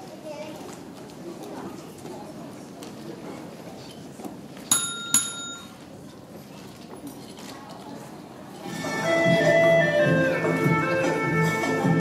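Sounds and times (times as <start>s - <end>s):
small bell strikes: 4.7s - 5.8s.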